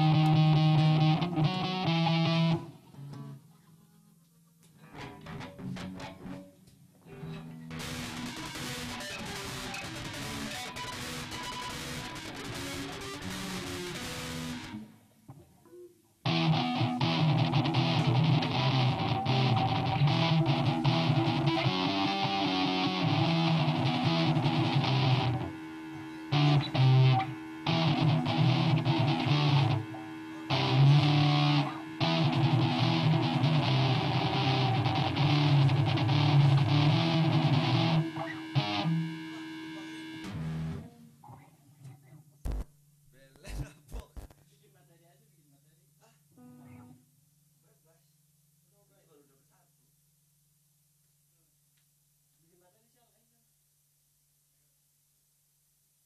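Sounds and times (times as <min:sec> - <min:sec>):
bass guitar: 0:00.0 - 0:03.4, 0:04.8 - 0:06.4, 0:07.0 - 0:14.9, 0:16.3 - 0:25.6, 0:26.2 - 0:39.2, 0:40.2 - 0:41.0
distorted electric guitar riff: 0:00.0 - 0:03.4, 0:04.8 - 0:06.5, 0:07.1 - 0:15.4, 0:16.2 - 0:41.4.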